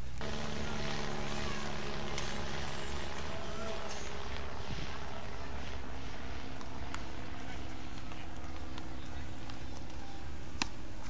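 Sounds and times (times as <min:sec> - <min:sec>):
steady engine drone: 0:00.0 - 0:11.0.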